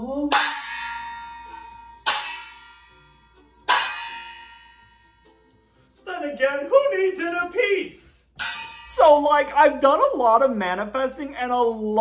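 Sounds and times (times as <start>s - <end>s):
meditation bell ringing: 0.5s - 5.6s.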